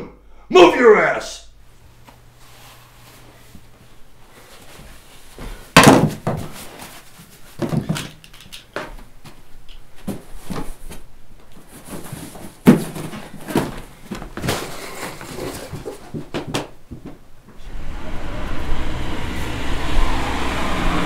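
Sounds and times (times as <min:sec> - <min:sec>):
boxes and belongings thumping: 0:05.4 - 0:09.4, 0:10.0 - 0:17.2.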